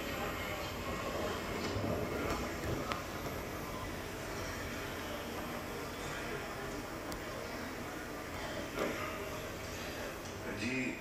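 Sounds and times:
television murmur of voices: 0.0 - 11.0.

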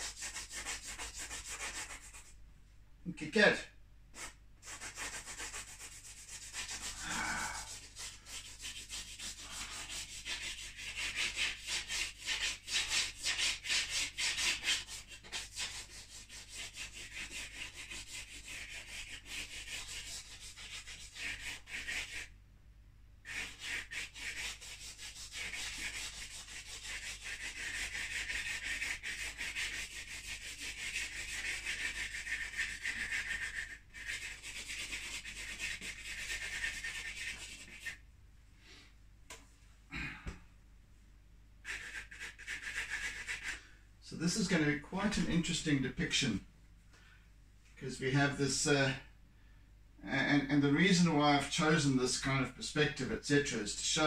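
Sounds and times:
scratching strokes on paper: 0.0 - 2.3, 4.2 - 22.3, 23.2 - 38.0, 41.6 - 43.6.

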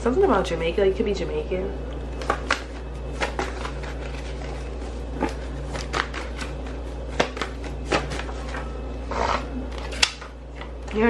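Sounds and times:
paper card rustling: 2.2 - 8.7.

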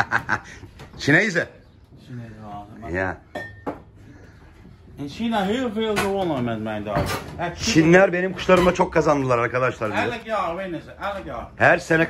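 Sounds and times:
ceramic vase clinking on shelf: 3.3 - 3.9.

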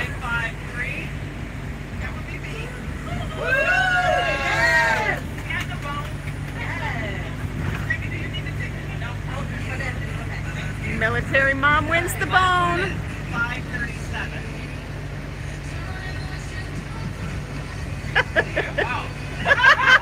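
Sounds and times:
bus engine drone: 0.0 - 20.0
passengers talking: 0.0 - 20.0.

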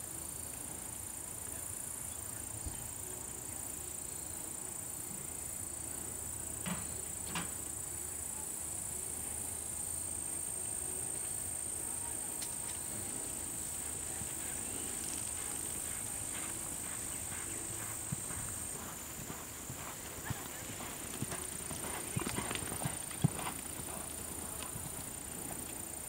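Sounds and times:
hooves on sand: 12.6 - 26.0.

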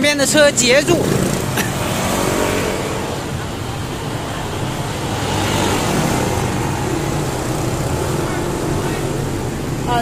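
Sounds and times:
traffic engine rumble: 0.0 - 10.0.

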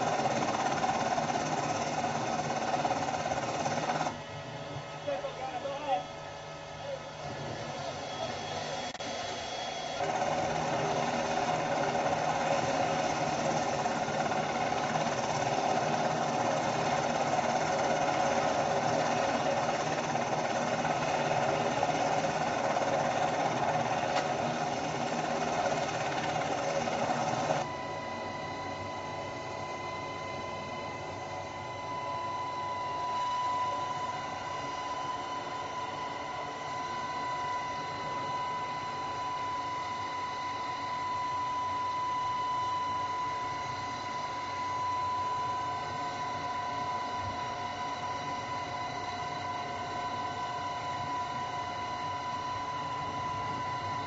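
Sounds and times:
helicopter engine and rotor drone: 0.0 - 54.0
steady high whine: 0.0 - 54.0.

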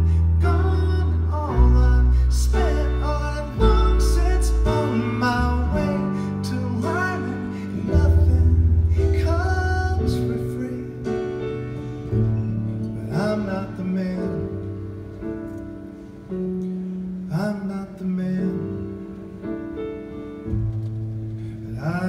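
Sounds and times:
person singing: 0.0 - 11.5
grand piano: 0.0 - 22.0.

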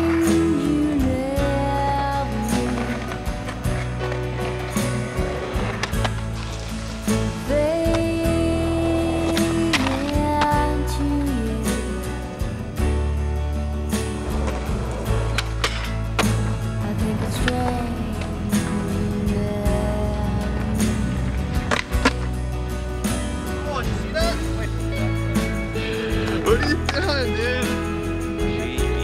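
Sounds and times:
skateboard rolling on concrete: 0.0 - 11.4, 12.2 - 29.0
music with steady bass line: 0.0 - 29.0
skateboard clacks: 2.6 - 6.9, 14.4 - 16.5, 20.6 - 22.3.

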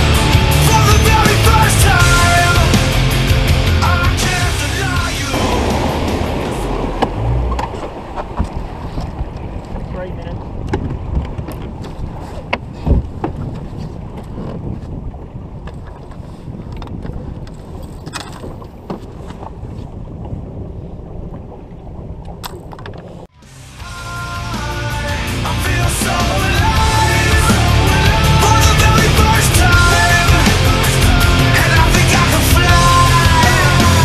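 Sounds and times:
water moving along boat hull: 3.8 - 23.4
wind on microphone: 4.9 - 23.3.

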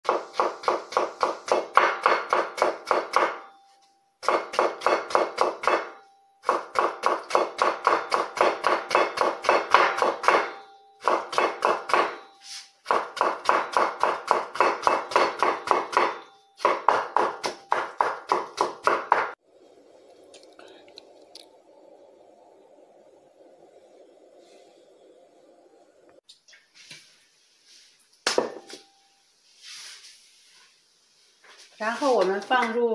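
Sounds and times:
cleaver chopping on wooden board: 12.9 - 19.4.

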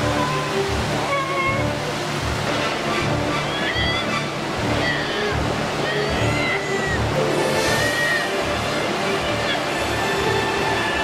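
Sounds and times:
background music: 0.0 - 11.0
river rushing over rocks: 0.0 - 11.0.

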